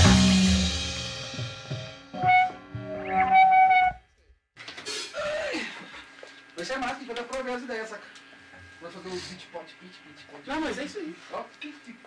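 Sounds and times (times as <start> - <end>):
sustained electric guitar notes: 0.0 - 4.0.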